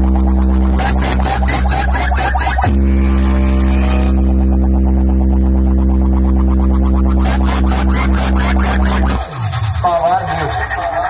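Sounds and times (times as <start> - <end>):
loud bass drone: 0.0 - 11.0
rhythmic synth layer: 0.0 - 11.0.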